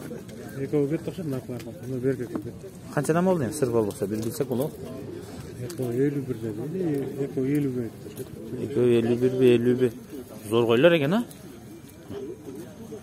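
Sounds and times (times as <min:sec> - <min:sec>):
people talking in background: 0:00.0 - 0:13.0.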